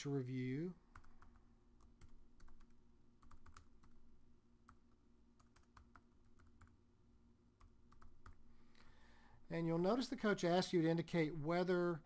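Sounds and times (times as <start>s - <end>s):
faint low hum: 0.0s - 12.0s
typing on computer keyboard: 0.9s - 4.0s, 5.4s - 6.8s, 7.6s - 8.4s.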